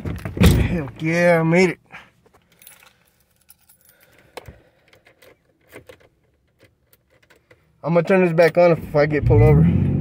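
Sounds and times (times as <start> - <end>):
keys jingling: 2.5 - 4.3.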